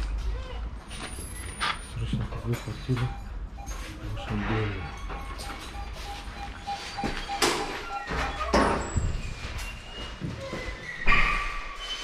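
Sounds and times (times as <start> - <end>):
short electronic beeps: 2.7 - 8.6.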